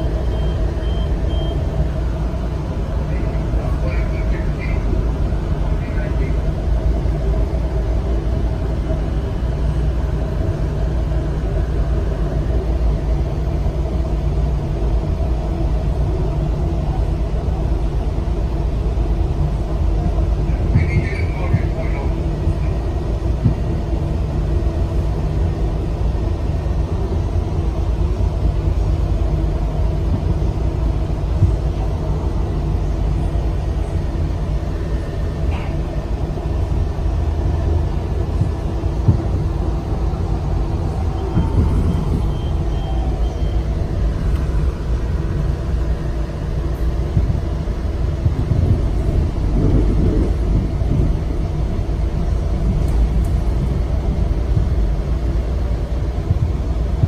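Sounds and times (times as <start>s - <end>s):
steady hum: 0.0s - 57.0s
train wheels rumbling on rail: 0.0s - 57.0s.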